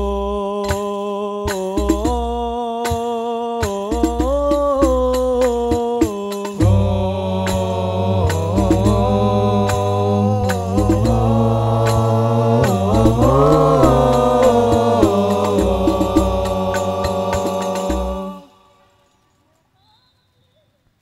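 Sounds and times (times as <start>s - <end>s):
men chanting devotional melody: 0.0s - 19.0s
frame drums struck: 6.6s - 18.4s.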